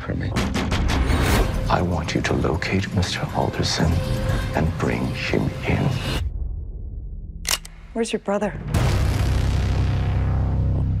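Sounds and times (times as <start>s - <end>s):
sharp mechanical click: 7.4s - 7.8s.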